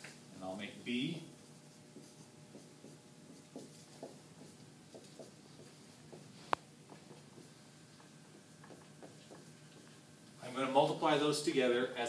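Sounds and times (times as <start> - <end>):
marker writing on whiteboard: 1.3 - 10.1.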